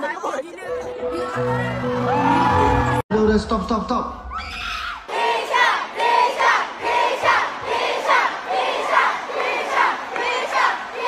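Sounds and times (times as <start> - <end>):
crowd screaming and cheering: 0.9 - 5.8.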